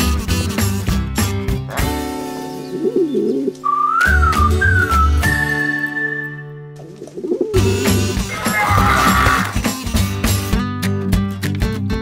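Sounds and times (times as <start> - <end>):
cartoon pigeons cooing: 1.7 - 5.0, 6.8 - 9.6
cartoon music: 7.2 - 9.6.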